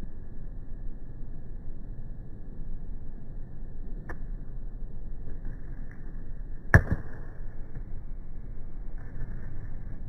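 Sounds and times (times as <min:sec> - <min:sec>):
low steady hum: 0:00.0 - 0:10.0
cricket bat striking ball: 0:06.7 - 0:07.2.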